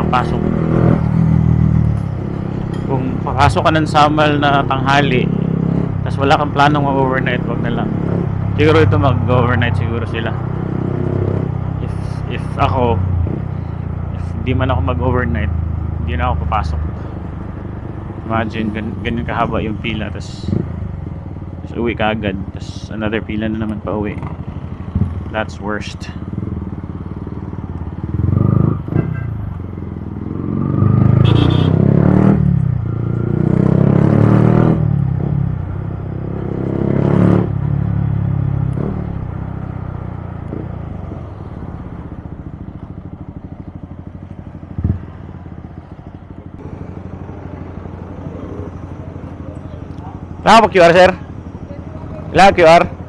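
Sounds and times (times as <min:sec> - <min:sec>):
motorcycle engine revving: 0:00.0 - 0:22.8, 0:23.4 - 0:53.0.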